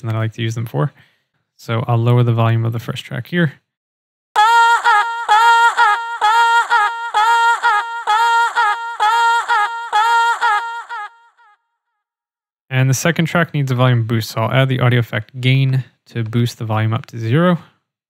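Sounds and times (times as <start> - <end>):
synthesized singing voice: 4.4 - 11.4.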